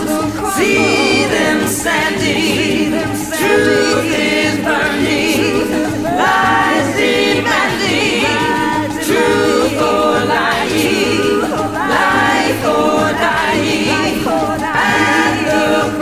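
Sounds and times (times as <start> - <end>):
female a cappella choir singing: 0.0 - 16.0.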